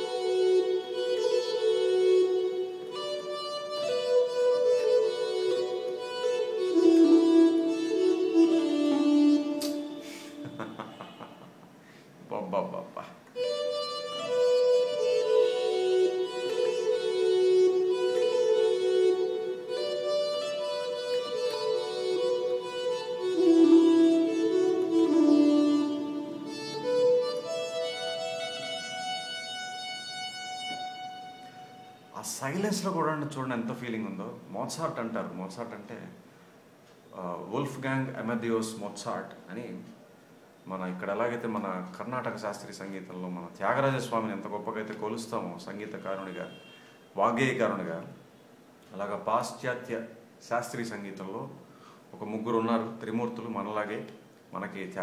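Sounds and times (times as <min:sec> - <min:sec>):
reedy synth melody: 0:00.0 - 0:11.5, 0:13.4 - 0:32.2.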